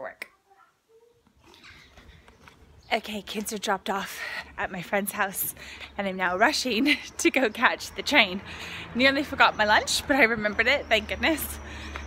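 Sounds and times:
street background noise: 0:00.0 - 0:12.0
woman speaking: 0:02.9 - 0:08.4, 0:09.0 - 0:11.6.

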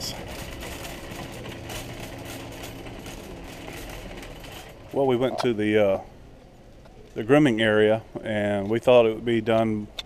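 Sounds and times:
shopping cart rolling on asphalt: 0:00.0 - 0:06.0.

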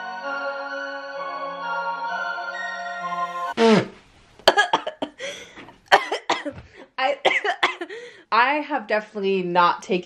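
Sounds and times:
background music: 0:00.0 - 0:03.6
woman coughing: 0:04.5 - 0:08.0.

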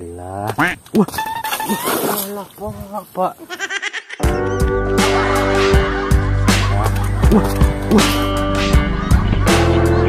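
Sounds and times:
person vocalizing: 0:07.2 - 0:08.3.

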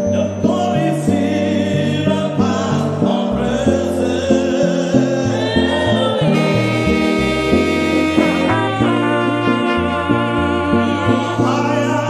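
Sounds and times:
bass line: 0:00.0 - 0:12.0
group singing gospel chorus: 0:00.1 - 0:12.0.

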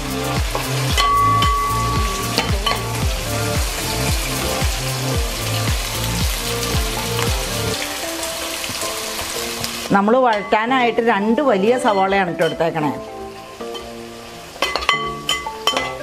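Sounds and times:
background music with beat: 0:00.0 - 0:09.9
onions sizzling in oil: 0:00.0 - 0:16.0.

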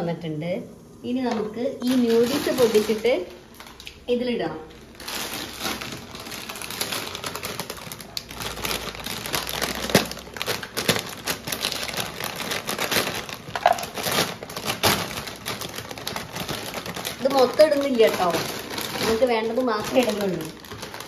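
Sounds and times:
plastic bag crinkling: 0:01.8 - 0:21.0.

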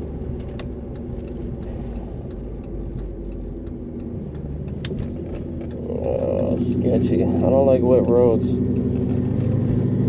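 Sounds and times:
car engine low rumble: 0:00.0 - 0:10.0
light regular ticking: 0:00.0 - 0:10.0.

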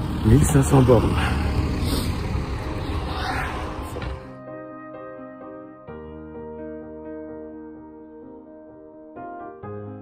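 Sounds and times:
cars passing by: 0:00.0 - 0:04.4.

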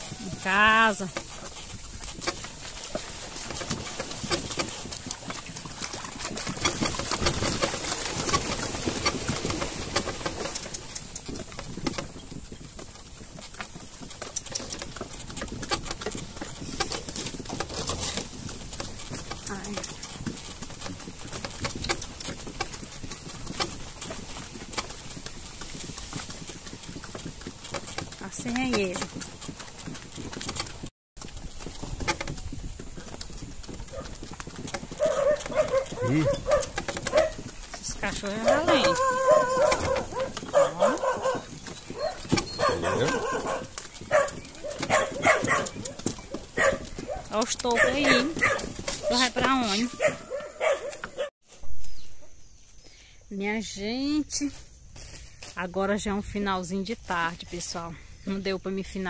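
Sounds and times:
cart and harness knocks and clicks: 0:00.0 - 0:51.3
hooves clip-clopping on dirt: 0:00.0 - 0:59.0.

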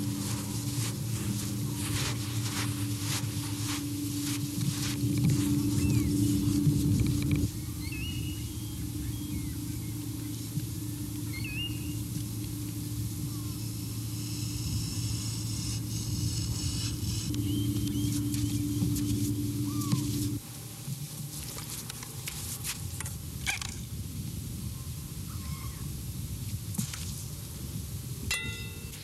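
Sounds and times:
low rumbling drone: 0:00.0 - 0:20.7
bird chirps: 0:03.6 - 0:12.2, 0:17.3 - 0:20.4.

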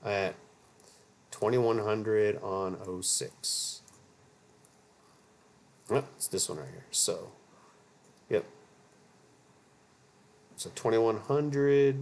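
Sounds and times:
man speaking: 0:00.0 - 0:00.4, 0:01.3 - 0:03.9, 0:05.9 - 0:07.4, 0:08.3 - 0:08.6, 0:10.6 - 0:12.0
low steady hum: 0:00.0 - 0:12.0.

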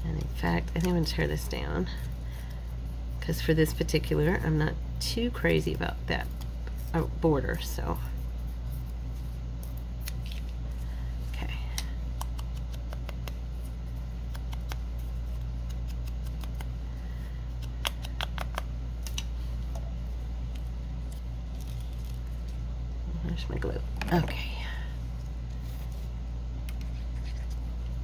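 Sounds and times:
steady low hum: 0:00.0 - 0:28.0.

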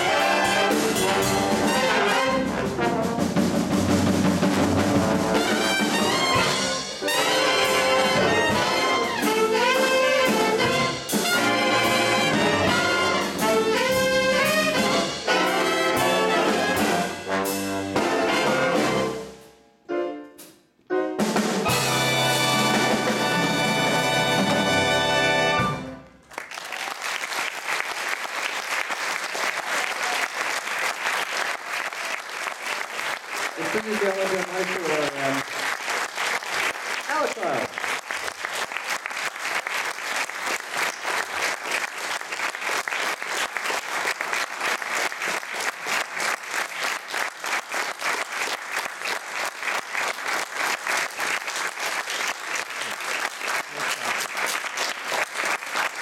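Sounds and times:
big band chord: 0:00.0 - 0:26.0
audience applause: 0:26.2 - 0:56.0.

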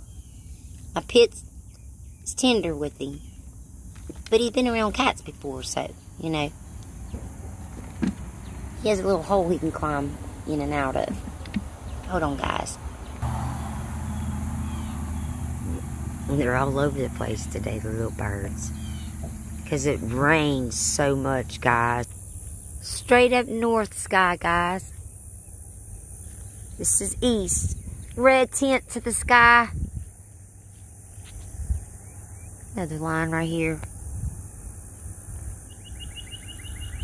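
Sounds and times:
high insect trill: 0:00.0 - 0:37.0
steady low rumble: 0:05.0 - 0:22.8
low rumble on microphone: 0:12.8 - 0:21.7, 0:33.8 - 0:36.1
faint bird chirps: 0:35.6 - 0:37.0.

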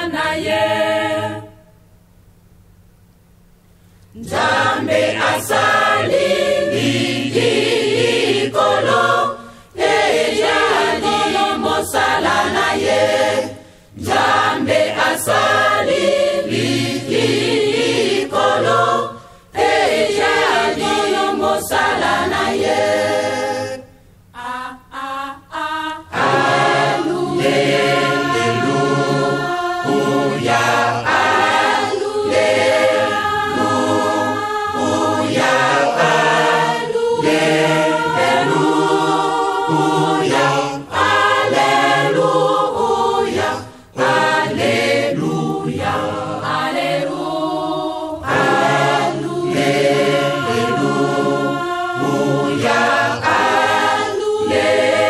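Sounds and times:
choir singing religious song: 0:00.0 - 0:01.8, 0:04.1 - 0:55.0.

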